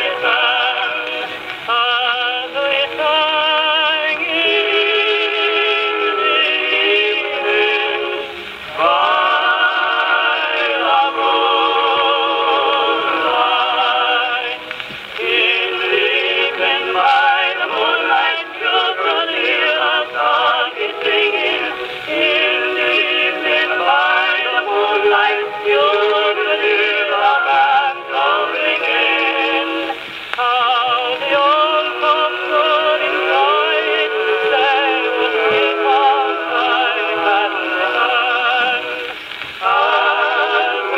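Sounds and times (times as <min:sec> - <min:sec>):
phonograph record playing: 0:00.0 - 0:40.9
singer with strong vibrato: 0:00.0 - 0:40.9.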